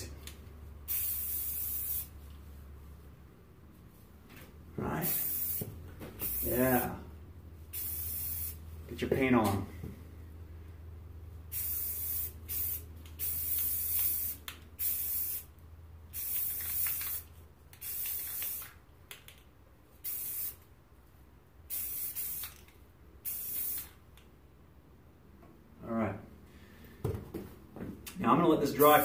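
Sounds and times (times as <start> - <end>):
spray paint can hissing: 0.8 - 2.3, 5.1 - 6.8, 7.7 - 8.7, 11.5 - 15.5, 16.1 - 19.4, 20.0 - 20.6, 21.7 - 24.0.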